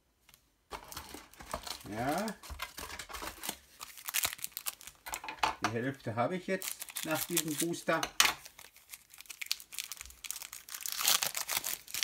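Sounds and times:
foil wrapper crinkling: 0:00.7 - 0:05.3, 0:06.5 - 0:12.0.

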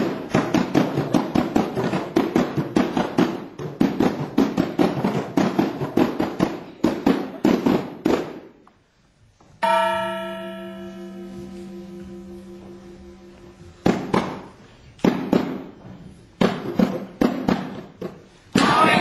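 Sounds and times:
hand-beaten frame drums: 0:00.0 - 0:08.6, 0:13.6 - 0:19.0
struck note ringing: 0:09.6 - 0:13.7.

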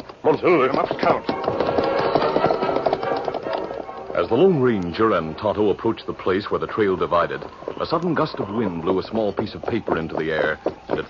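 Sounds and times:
horse hoofbeats: 0:00.0 - 0:11.0.

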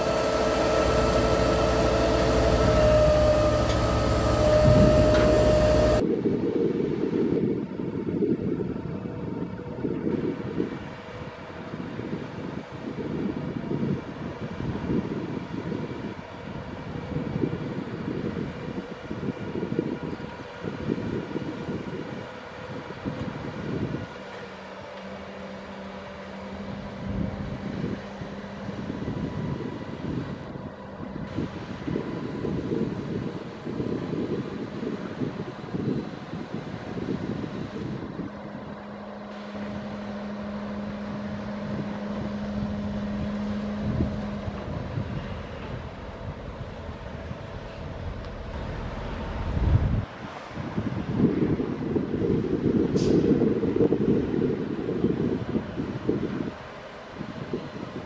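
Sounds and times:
diesel engine running loudly: 0:00.0 - 0:58.0
steady whine: 0:00.0 - 0:58.0
wind rumbling on microphone: 0:00.0 - 0:58.0.

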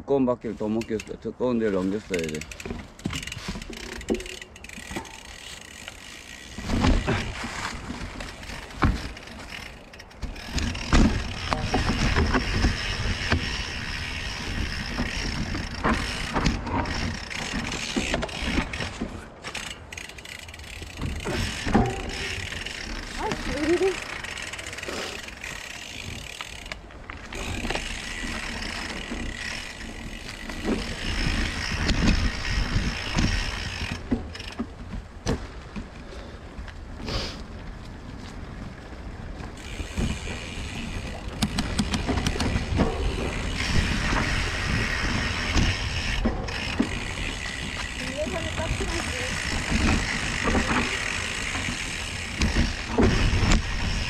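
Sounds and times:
constant low rumble: 0:00.0 - 0:54.0
bikes knocking and rattling: 0:00.1 - 0:54.0
bike tyres crunching leaves: 0:00.4 - 0:54.0.

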